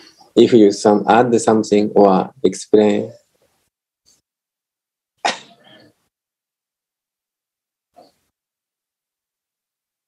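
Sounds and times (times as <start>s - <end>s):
person sneezing: 5.2s - 5.9s.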